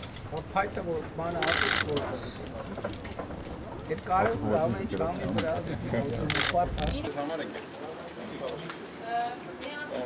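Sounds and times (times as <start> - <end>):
crowd murmuring: 1.4 - 7.1.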